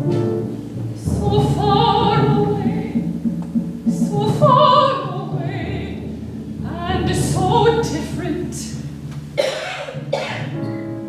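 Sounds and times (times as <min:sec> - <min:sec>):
soprano opera singing: 0:01.0 - 0:03.2, 0:03.9 - 0:08.9.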